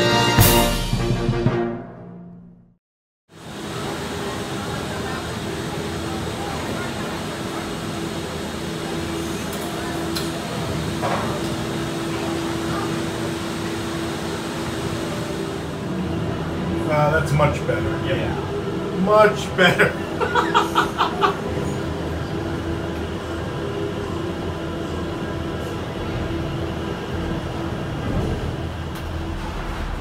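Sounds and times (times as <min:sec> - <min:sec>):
gondola station mechanical hum: 0:03.3 - 0:30.0.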